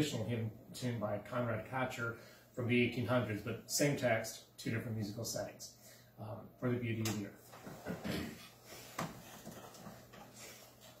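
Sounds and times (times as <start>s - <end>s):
soft knocks and rustles: 7.5s - 11.0s.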